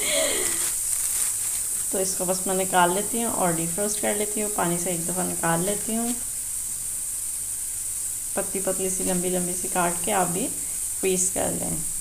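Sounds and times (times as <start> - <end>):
onions frying in a pan: 0.0 - 12.0.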